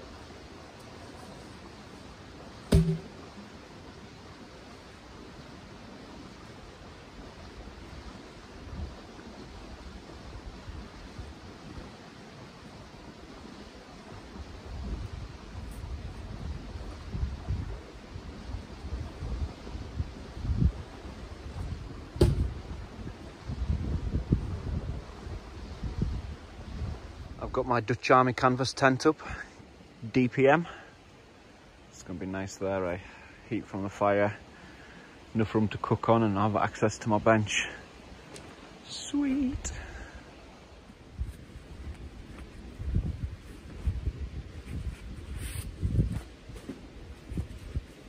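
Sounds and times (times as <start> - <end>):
steady outdoor hiss: 0.0 - 48.0
wooden log knock: 2.7 - 3.3, 22.2 - 22.6
wind buffeting microphone: 14.3 - 27.5, 40.9 - 48.0.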